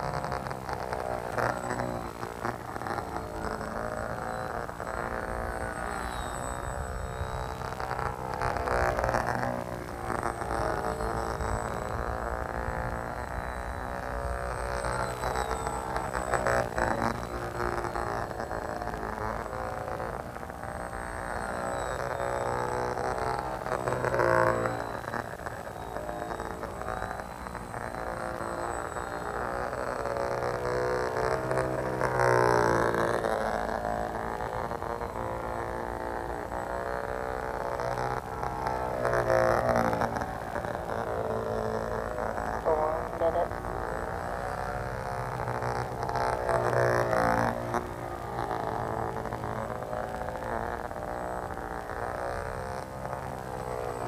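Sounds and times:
model plane motor buzzing: 0.0s - 54.0s.

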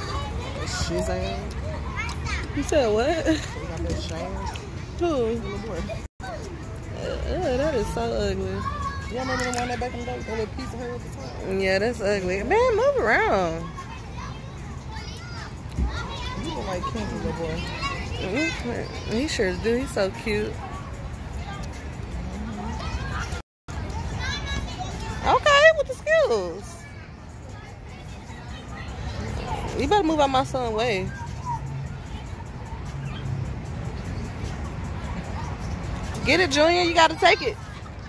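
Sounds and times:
children playing and calling out: 0.0s - 38.0s
city traffic rumble: 0.0s - 38.0s
music: 26.0s - 38.0s.

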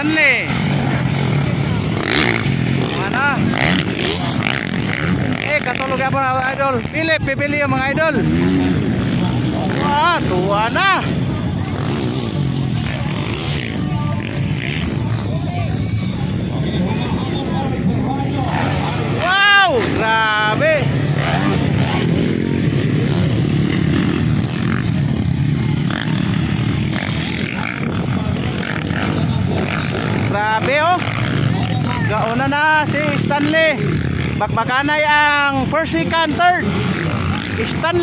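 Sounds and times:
dirt bike engines revving: 0.0s - 38.0s.

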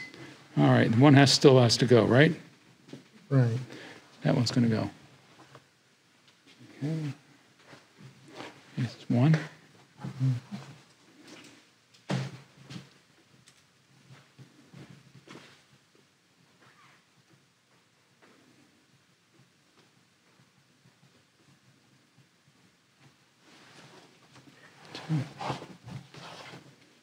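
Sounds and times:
faint handling sounds: 2.8s - 27.0s.

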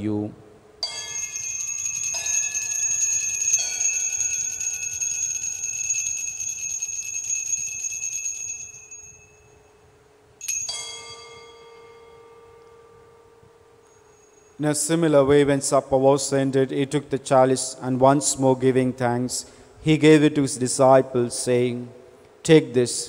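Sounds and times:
altar bells ringing: 0.8s - 14.7s.

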